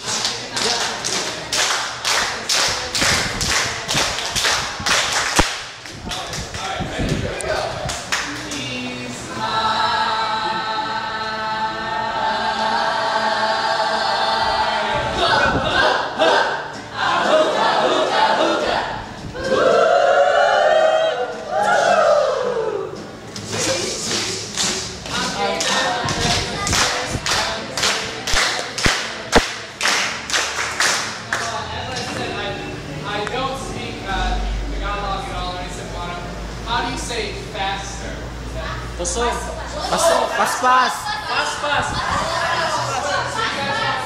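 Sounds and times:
group clapping in rhythm: 0.0 - 8.8, 23.4 - 32.3
group voicing sliding sound: 7.5 - 31.3.

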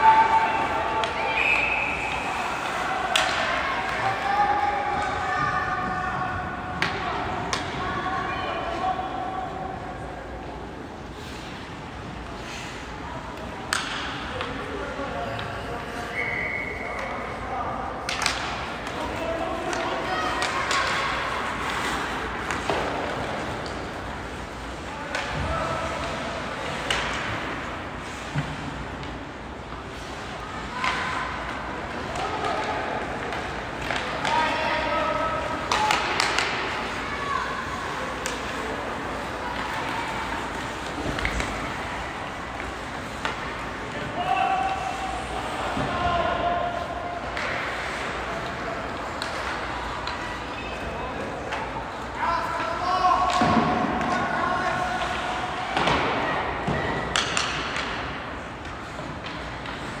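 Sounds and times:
pucks and sticks hitting boards: 0.0 - 8.0, 13.4 - 15.7, 18.0 - 60.0.

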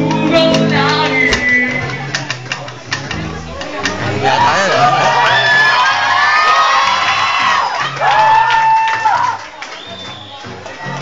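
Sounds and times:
acoustic guitars strumming: 0.0 - 6.0
audience whooping and cheering: 4.0 - 10.6.

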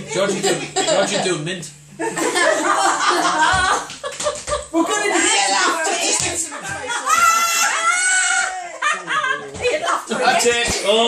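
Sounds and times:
group laughing and shrieking: 6.8 - 9.6
high drawn-out cry: 6.9 - 8.8.

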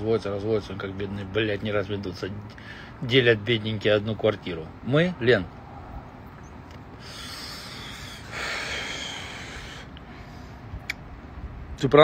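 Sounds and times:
man breathing while smoking: 2.5 - 3.0, 6.9 - 10.8.

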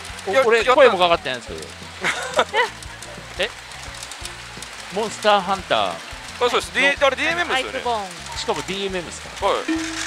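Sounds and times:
music: 0.0 - 10.0
pachinko parlour din: 0.1 - 10.0.

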